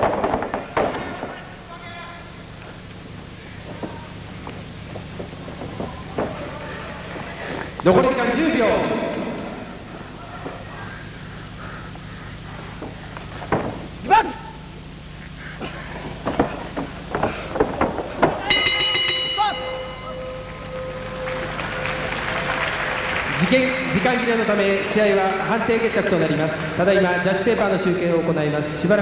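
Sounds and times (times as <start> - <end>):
bell ringing: 18.4 - 24.9.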